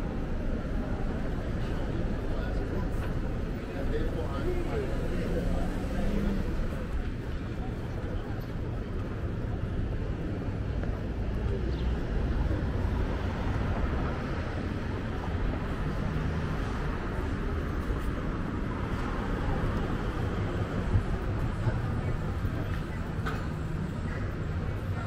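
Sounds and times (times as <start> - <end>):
background street noise: 0.0 - 25.0
low rumble of street traffic: 0.0 - 25.0.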